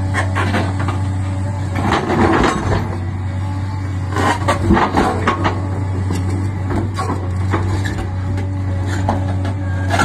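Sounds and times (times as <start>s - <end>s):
excavator diesel engine running: 0.0s - 10.0s.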